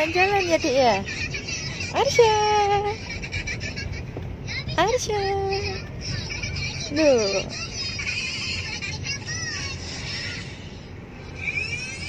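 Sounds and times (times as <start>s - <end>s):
car engine and road hum: 0.0s - 12.0s.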